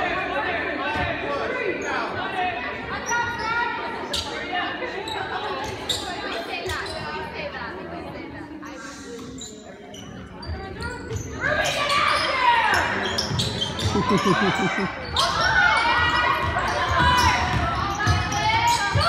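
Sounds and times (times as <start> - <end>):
spectators' overlapping voices: 0.0 - 16.7.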